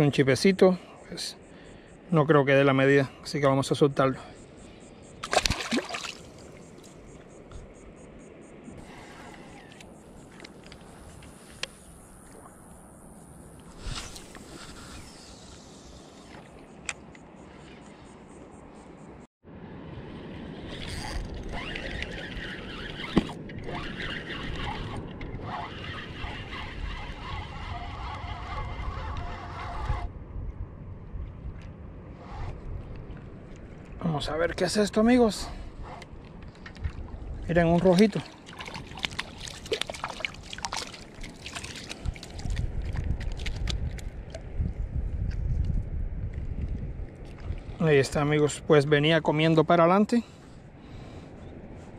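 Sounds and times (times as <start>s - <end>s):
water lapping: 4.4s - 7.3s, 20.6s - 30.1s, 35.2s - 44.6s, 47.2s - 48.3s
fish splashing into water: 5.2s - 6.6s, 37.9s - 44.4s
wind rumbling on microphone: 19.5s - 49.2s
spinning reel whirring: 20.7s - 30.1s.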